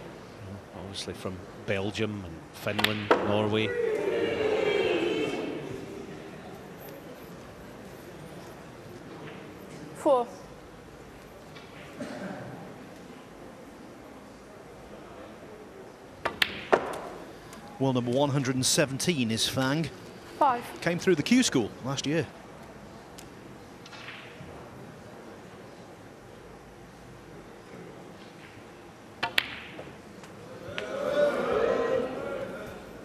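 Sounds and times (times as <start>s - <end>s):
cue tip striking ball: 29.2s - 30.0s
snooker balls clacking: 29.2s - 30.0s.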